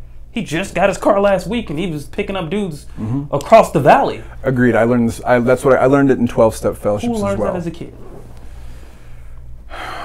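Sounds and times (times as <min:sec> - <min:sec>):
steady low hum: 0:00.0 - 0:10.0
sharp intake of breath: 0:08.4 - 0:10.0.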